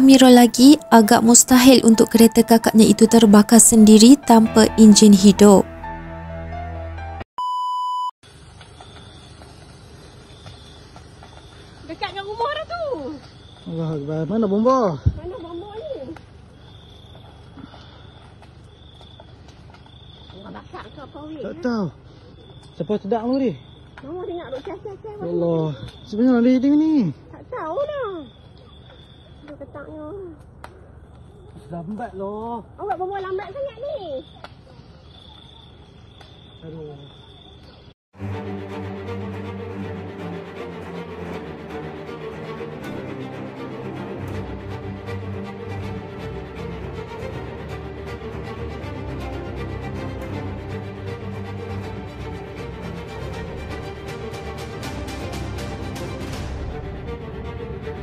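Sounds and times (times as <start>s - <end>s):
background music with sustained notes: 0.0s - 7.3s, 38.2s - 58.0s
electronic beep tone: 7.4s - 8.1s
crickets trilling: 8.2s - 37.9s
faint high chirping: 33.9s - 37.9s.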